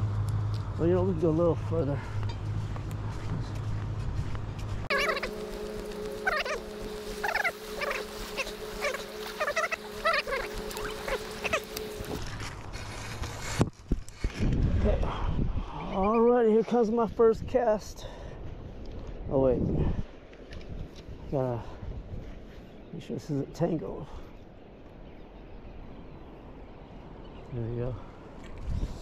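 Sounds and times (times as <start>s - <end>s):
low hum: 0.0s - 16.2s
animal wavering cries: 4.9s - 12.2s.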